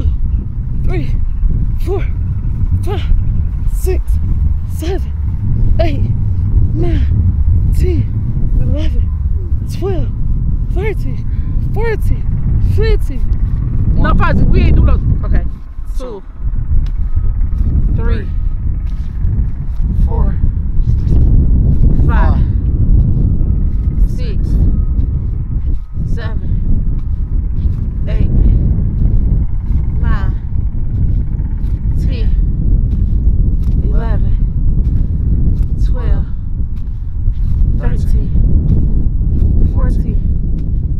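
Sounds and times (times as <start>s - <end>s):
wind rumble on microphone: 0.0s - 40.9s.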